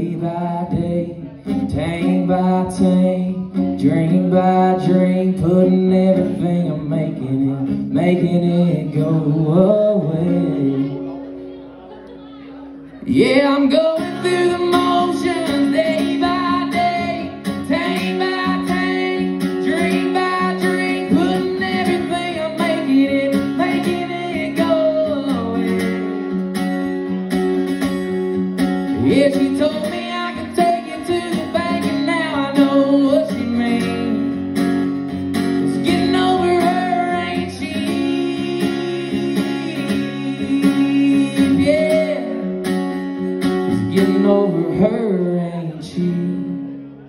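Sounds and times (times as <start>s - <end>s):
person singing: 0.0s - 11.6s, 12.2s - 26.4s, 28.9s - 34.6s, 35.4s - 43.0s, 43.7s - 46.8s
acoustic guitar strumming: 0.0s - 47.0s.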